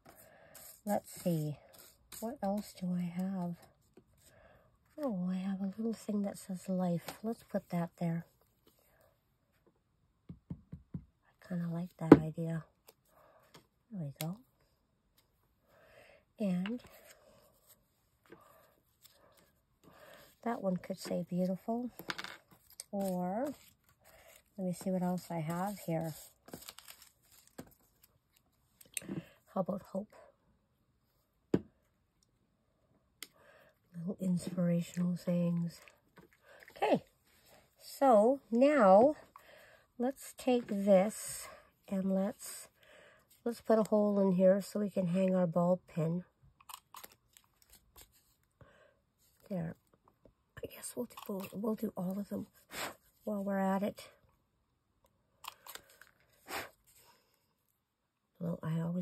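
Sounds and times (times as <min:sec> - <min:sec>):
paper labels rustling and ticking: 0:20.8 - 0:29.0.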